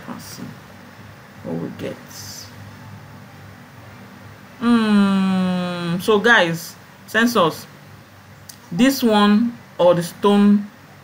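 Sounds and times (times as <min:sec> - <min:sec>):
faint room noise: 0:00.0 - 0:11.0
low steady hum: 0:00.0 - 0:11.0.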